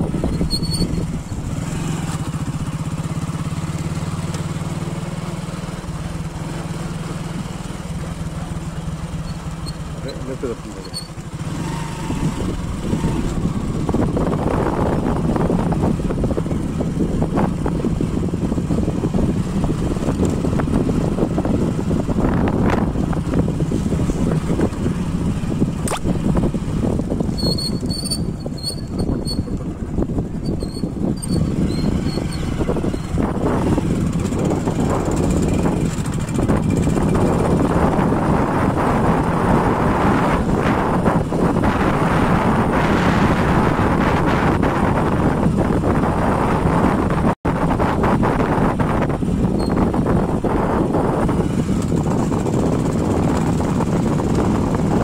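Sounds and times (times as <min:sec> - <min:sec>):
motorbike engine running: 0:00.0 - 0:55.0
road and wind noise: 0:00.0 - 0:55.0.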